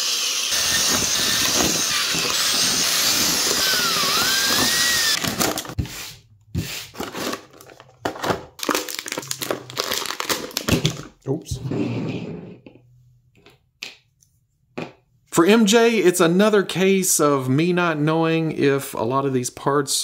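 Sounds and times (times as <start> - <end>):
electric drill running: 0.0 - 5.8
plastic blister tray crinkling: 7.0 - 11.1.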